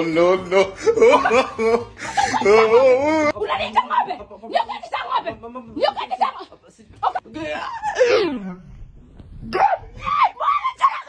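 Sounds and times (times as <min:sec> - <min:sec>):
person laughing loudly: 0:00.2 - 0:03.3.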